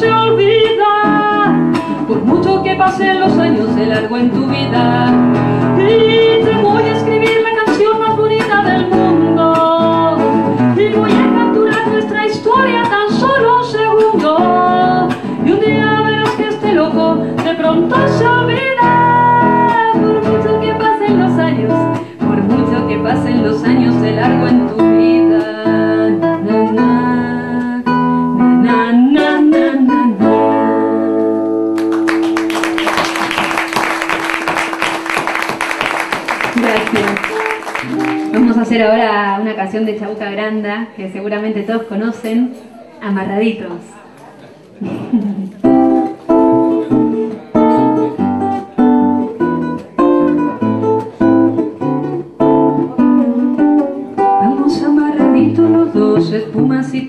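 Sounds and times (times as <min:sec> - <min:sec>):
woman singing a ballad: 0:00.0 - 0:31.5, 0:54.4 - 0:57.0
classical guitar accompaniment: 0:00.0 - 0:40.4, 0:44.8 - 0:57.0
audience clapping: 0:31.8 - 0:38.6.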